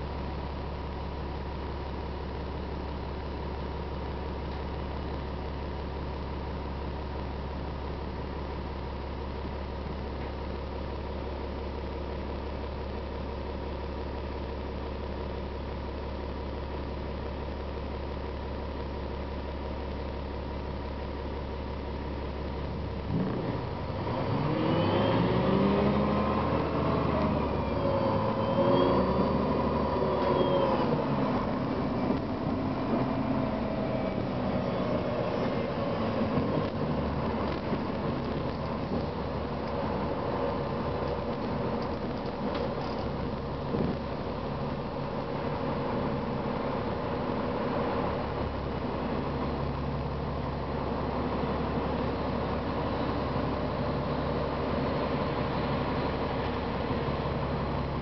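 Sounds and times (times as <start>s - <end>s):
bus diesel engine: 0.0s - 58.0s.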